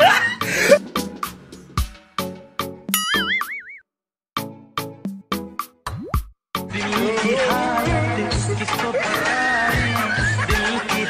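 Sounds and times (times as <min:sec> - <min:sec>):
music with steady beat: 0:00.7 - 0:02.8
cartoon boing with wobbling pitch: 0:03.0 - 0:03.8.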